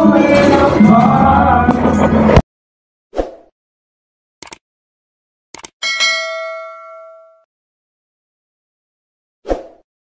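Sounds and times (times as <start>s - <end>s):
notification bell ding: 5.8s - 7.5s.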